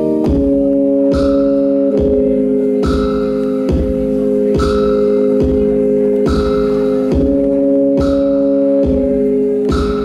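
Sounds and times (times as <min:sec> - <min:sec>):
bright mallet-like beat: 0:00.0 - 0:10.0
held keyboard chord: 0:00.0 - 0:10.0.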